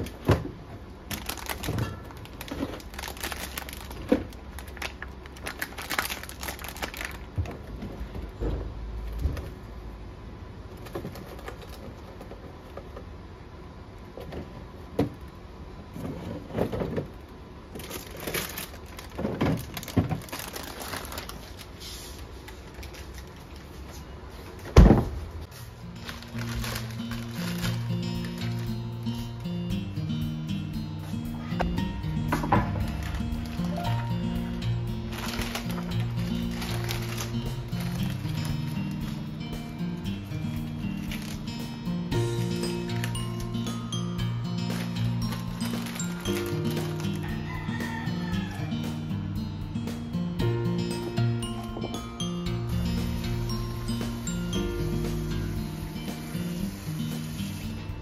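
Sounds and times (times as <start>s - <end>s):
plastic packaging crinkling: 1.0s - 8.1s, 17.7s - 24.6s, 25.6s - 29.5s, 31.4s - 48.1s
refrigerator door shutting: 24.7s - 25.3s
soft background music: 25.4s - 58.0s
low rumble: 31.3s - 38.4s.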